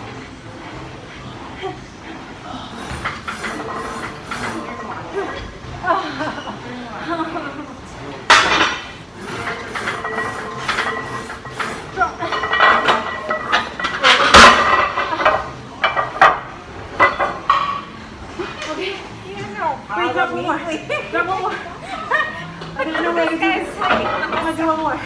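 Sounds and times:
weight plates clanking on metal: 8.3s - 15.4s.

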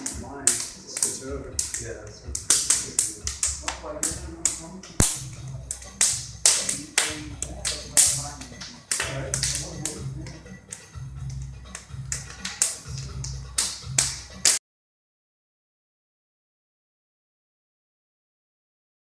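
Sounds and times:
hands slapping forearms: 0.0s - 14.6s
pulsing music bass: 0.2s - 14.5s.

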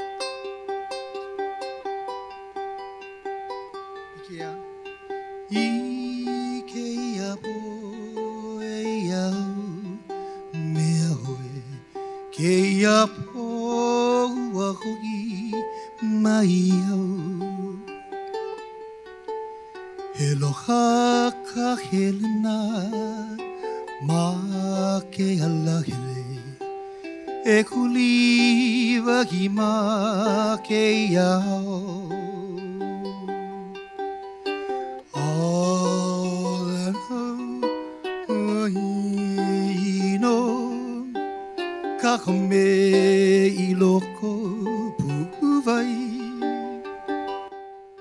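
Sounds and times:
person singing: 0.0s - 48.0s
ukulele and acoustic guitar: 0.0s - 48.0s.

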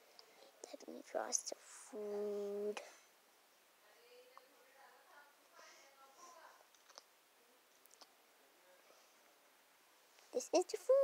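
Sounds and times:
faint sharp clicks: 6.7s - 7.1s.

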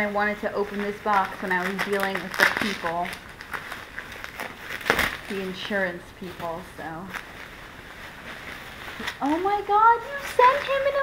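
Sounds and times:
bubble wrap crackle: 0.0s - 11.0s
bubble wrap rustling: 0.0s - 11.0s.

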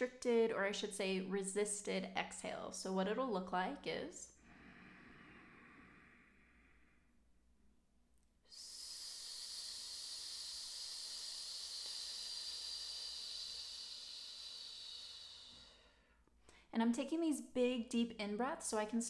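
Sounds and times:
faint in-breath: 4.4s - 7.3s, 8.5s - 16.7s
hissing exhale through lips: 8.5s - 15.9s.

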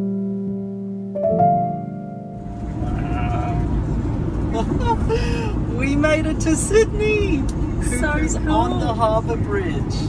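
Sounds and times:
piano music: 0.0s - 2.8s
road and engine noise in van: 1.4s - 10.0s.

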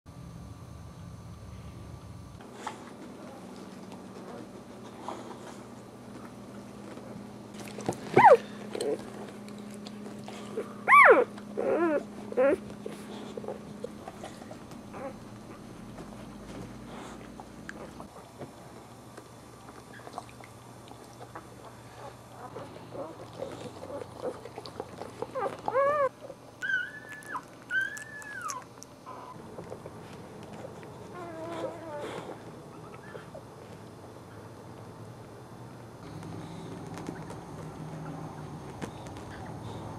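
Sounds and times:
puppies squealing: 8.1s - 9.0s, 10.8s - 12.6s, 25.3s - 29.4s
puppy whimpers: 8.1s - 9.1s, 10.2s - 13.6s, 14.9s - 15.2s, 25.1s - 29.4s, 30.6s - 33.5s.

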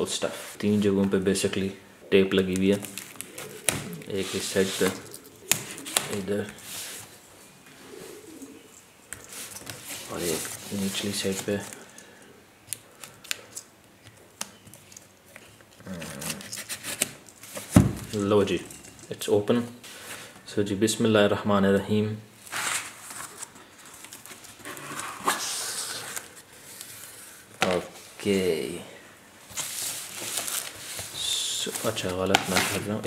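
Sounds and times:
plastic wrap and cardboard rustling: 2.4s - 7.2s, 9.2s - 12.0s, 14.5s - 19.2s, 22.4s - 28.4s, 29.4s - 33.0s
person speaking: 3.8s - 5.2s, 5.8s - 6.7s, 10.0s - 11.9s, 25.2s - 26.4s, 27.6s - 29.0s, 31.0s - 33.0s.

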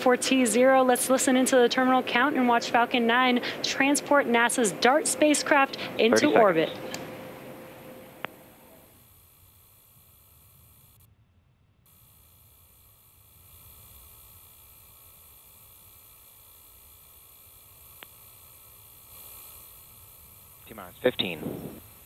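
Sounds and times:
radio channel hiss: 0.0s - 6.9s, 8.2s - 11.0s, 11.9s - 22.0s.

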